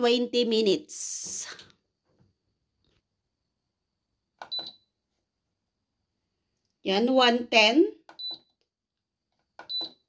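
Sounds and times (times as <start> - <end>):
oven control panel beep: 4.4 - 4.9, 8.1 - 8.6, 9.6 - 10.0.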